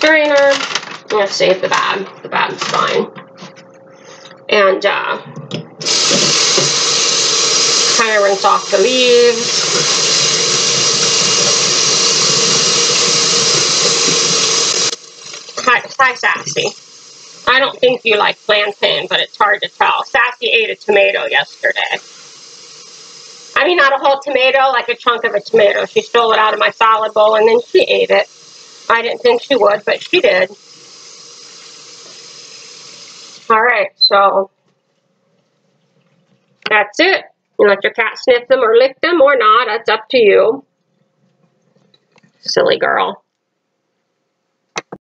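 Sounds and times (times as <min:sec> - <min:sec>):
tap running into metal colander: 0:05.8 - 0:08.9
leaves rinsed by hand: 0:05.8 - 0:33.5
tap water rushing into colander: 0:05.8 - 0:33.5.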